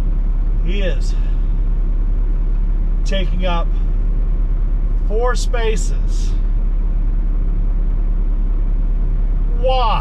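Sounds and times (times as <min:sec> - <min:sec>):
truck diesel engine rumble: 0:00.0 - 0:10.0.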